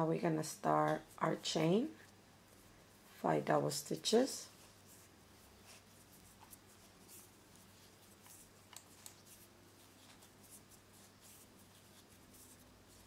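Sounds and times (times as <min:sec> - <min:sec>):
faint rustling of thread: 0:00.0 - 0:13.0.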